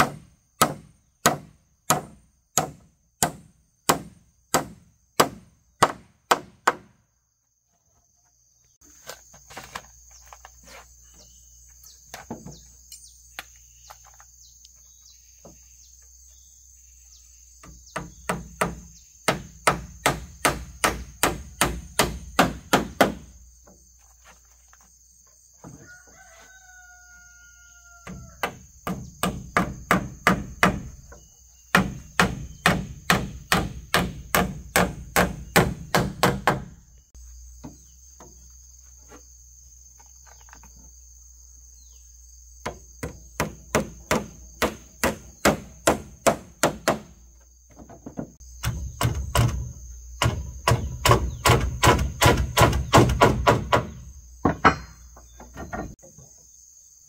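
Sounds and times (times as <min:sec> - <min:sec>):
insects buzzing: 0:00.0 - 0:57.0
hammer driving nails into wood: 0:17.9 - 0:23.2, 0:31.7 - 0:36.7, 0:42.6 - 0:47.1, 0:48.6 - 0:55.0
rooster crowing: 0:25.7 - 0:28.6.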